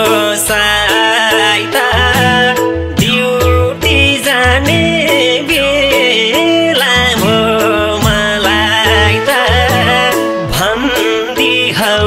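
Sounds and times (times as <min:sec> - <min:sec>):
instrumental backing: 0:00.0 - 0:12.0
low bass line: 0:00.0 - 0:12.0
person singing: 0:00.0 - 0:12.0.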